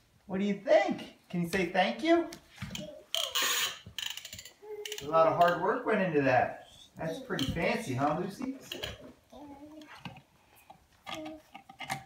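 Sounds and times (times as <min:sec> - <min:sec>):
toy car ratcheting clicks: 0:03.1 - 0:05.6.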